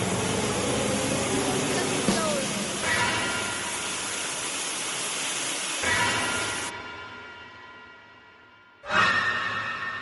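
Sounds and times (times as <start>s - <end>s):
shower spraying water: 0.0s - 6.8s.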